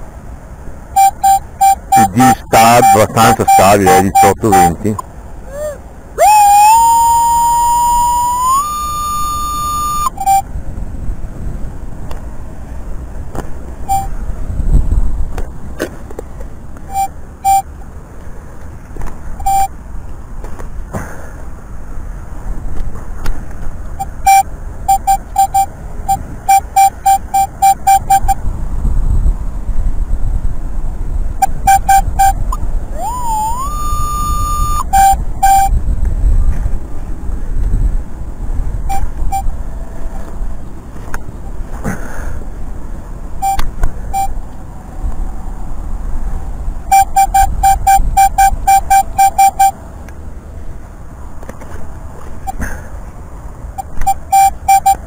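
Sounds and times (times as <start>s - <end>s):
metal detector tone: 1.0s - 10.5s, 13.8s - 14.2s, 16.9s - 17.7s, 19.4s - 19.7s, 24.0s - 28.4s, 31.4s - 35.8s, 38.9s - 39.5s, 43.4s - 44.4s, 46.9s - 49.8s, 53.8s - 55.0s
short beeps: 1.0s - 10.5s, 13.9s - 14.1s, 16.9s - 17.7s, 19.4s - 19.7s, 24.0s - 28.4s, 31.4s - 35.8s, 38.9s - 39.5s, 43.4s - 44.4s, 46.9s - 49.8s, 53.8s - 55.0s.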